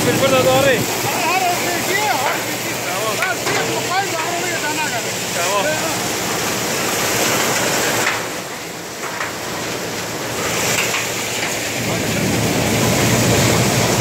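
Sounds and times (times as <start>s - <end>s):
threshing machine running: 0.0s - 14.0s
deep rumble: 11.6s - 14.0s.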